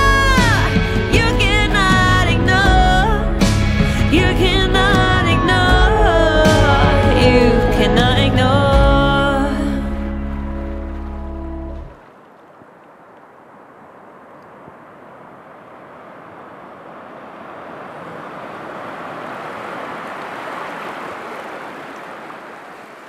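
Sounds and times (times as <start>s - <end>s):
held music chord: 1.3s - 11.9s
ocean surf on a beach: 11.9s - 23.0s.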